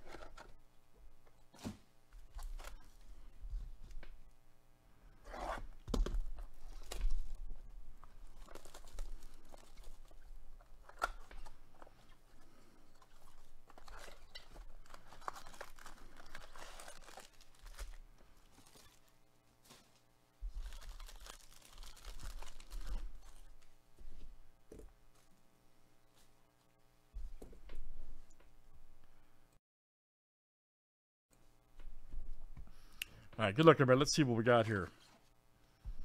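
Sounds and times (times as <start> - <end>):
cards and foil packs handled: 6.0 - 23.7
plastic wrap tearing and crinkling: 6.4 - 7.5, 8.1 - 11.9, 13.0 - 23.6.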